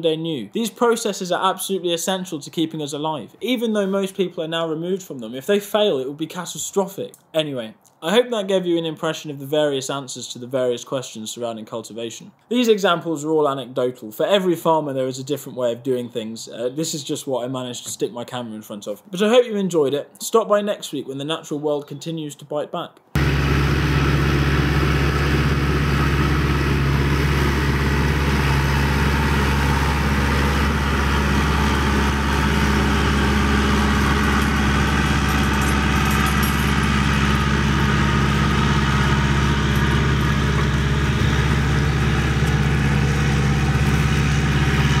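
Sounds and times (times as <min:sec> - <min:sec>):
tractor engine running: 0:23.2 - 0:45.0.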